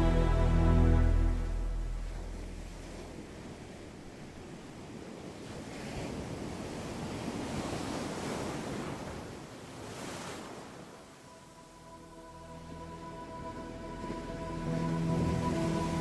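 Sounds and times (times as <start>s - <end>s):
ocean surf breaking on beach: 2.0s - 11.7s.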